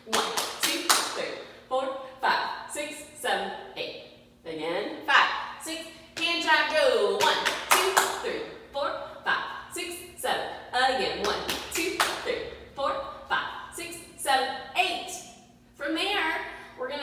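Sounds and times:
woman calling: 5.0s - 15.2s.

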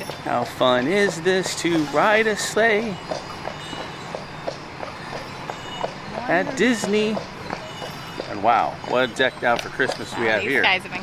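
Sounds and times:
hooves clip-clopping on pavement: 0.0s - 11.0s
wheels rolling: 0.0s - 11.0s.

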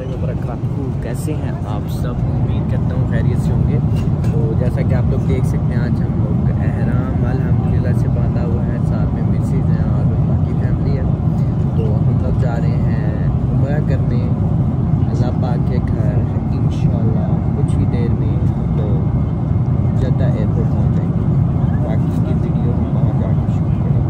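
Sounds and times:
man talking: 0.0s - 19.2s, 19.9s - 24.0s
airliner cabin rumble: 0.0s - 24.0s.

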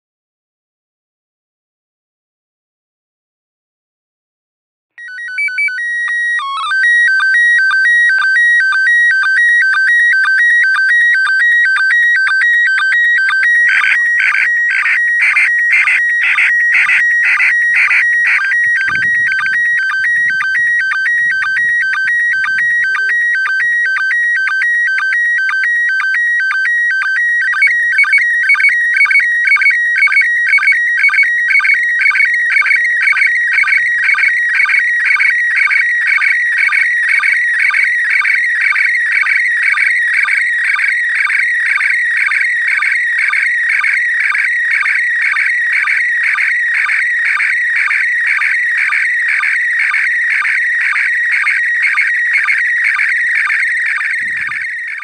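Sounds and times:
warbling high radio tones: 5.0s - 36.2s, 49.4s - 55.0s.

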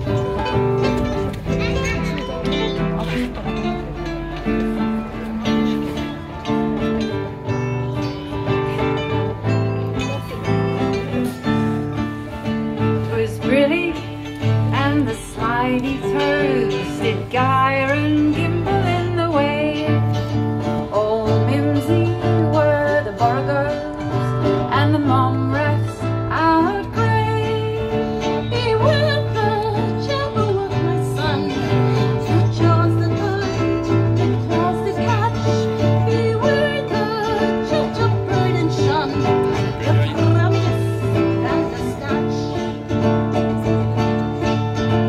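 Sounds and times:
acoustic guitar strumming: 0.0s - 45.0s
ukulele strumming: 0.0s - 45.0s
woman singing: 12.8s - 45.0s.

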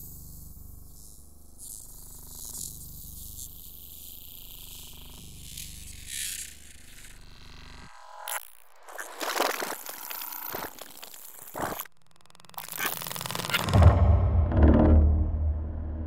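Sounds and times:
deep low rumble: 13.7s - 16.0s
low hum: 13.7s - 16.0s.

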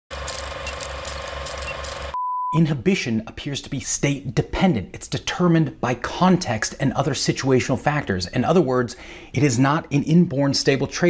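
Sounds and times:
film projector clatter: 0.1s - 2.2s.

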